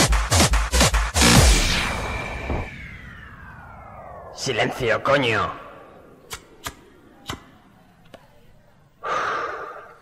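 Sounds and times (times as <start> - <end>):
sharp percussive clicks: 6.3 - 7.5.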